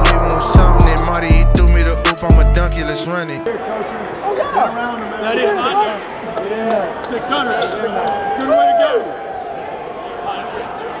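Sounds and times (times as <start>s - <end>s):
loud talking: 0.0s - 9.0s
murmur of voices: 2.9s - 11.0s.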